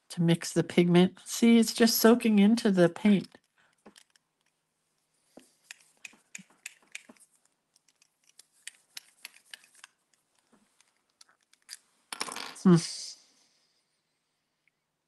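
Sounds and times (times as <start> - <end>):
pen clicking and ticking: 5.6 - 10.0.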